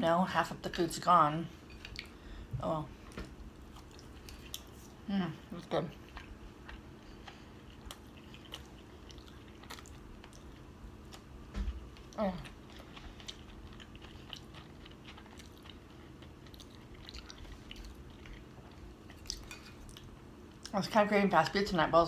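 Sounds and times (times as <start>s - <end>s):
mouth chewing food: 3.1s - 20.8s.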